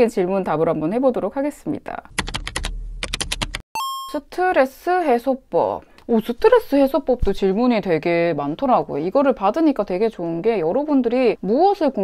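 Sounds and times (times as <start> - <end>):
short electronic beep: 3.8 - 4.2.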